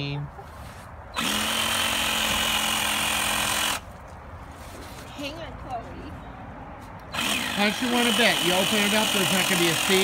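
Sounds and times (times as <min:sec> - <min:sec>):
electric drill running: 0:01.2 - 0:03.8, 0:07.1 - 0:10.0.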